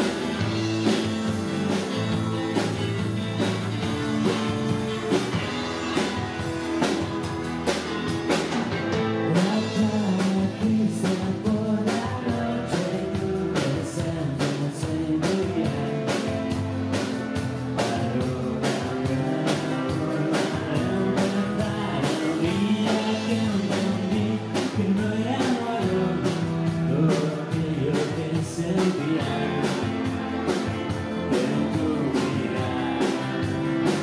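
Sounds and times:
rock band playing live: 0:00.0 - 0:34.0
person singing: 0:09.2 - 0:16.6, 0:17.8 - 0:30.2, 0:30.9 - 0:34.0.

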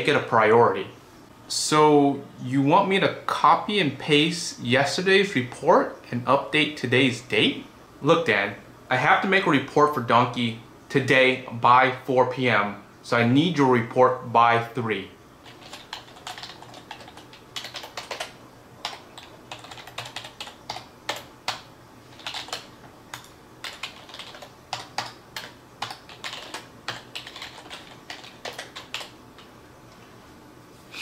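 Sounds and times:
typing on computer keyboard: 0:15.4 - 0:29.5.

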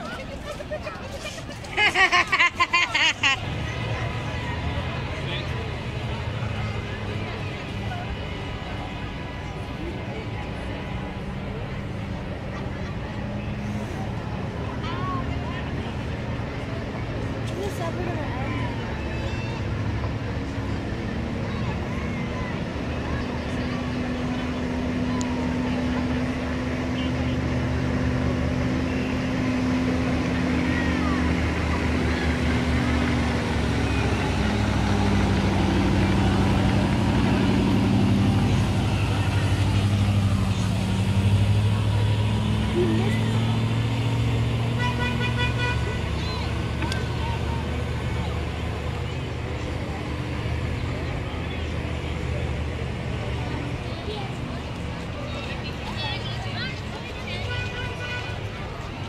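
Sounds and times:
ice resurfacing machine engine: 0:00.0 - 0:57.2
horn toot: 0:44.7 - 0:46.2.

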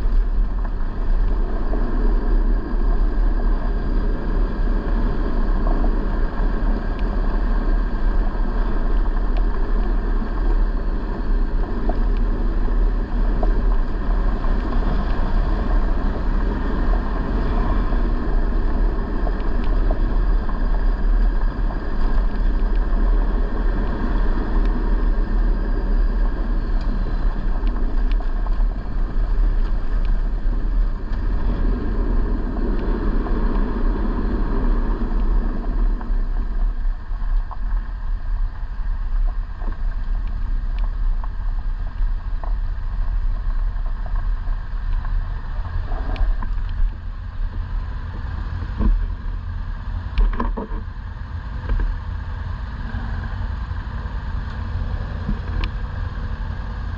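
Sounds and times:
tyres on dirt road: 0:00.0 - 0:56.9
vehicle engine rumble: 0:00.0 - 0:56.9
wind noise: 0:00.0 - 0:56.9.

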